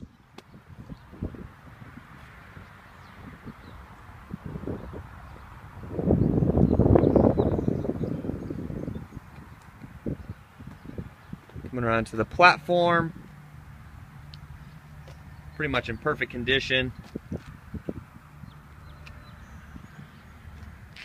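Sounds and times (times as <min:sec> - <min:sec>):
loud rush of noise on microphone: 0:00.0 - 0:21.0
footsteps on asphalt: 0:00.1 - 0:01.2, 0:02.0 - 0:03.8, 0:09.1 - 0:11.8, 0:13.2 - 0:15.6, 0:16.9 - 0:21.0.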